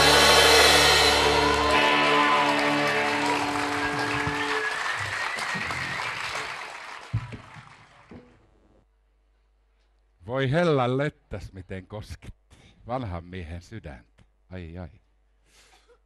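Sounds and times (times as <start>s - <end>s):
band's last chord ringing: 0.0s - 4.6s
audience applauding: 0.0s - 8.1s.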